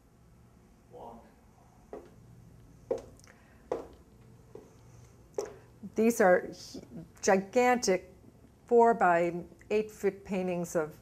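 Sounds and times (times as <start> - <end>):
heeled footsteps on wooden floor: 1.9 - 2.2, 2.9 - 3.1, 3.7 - 4.7, 5.4 - 5.6.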